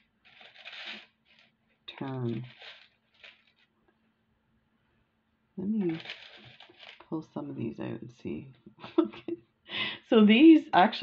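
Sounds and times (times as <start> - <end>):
knit sleeve rustling: 0.0 - 3.7, 5.8 - 7.0.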